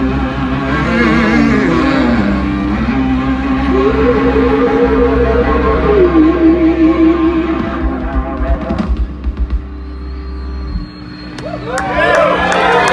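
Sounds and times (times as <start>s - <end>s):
wavering guitar notes: 0.0s - 9.4s
rock band playing: 1.1s - 10.2s
crowd cheering and whooping: 9.9s - 12.9s.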